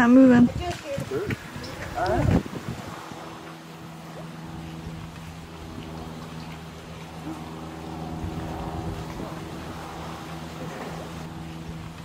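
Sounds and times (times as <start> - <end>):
distant engine droning: 0.0 - 12.0.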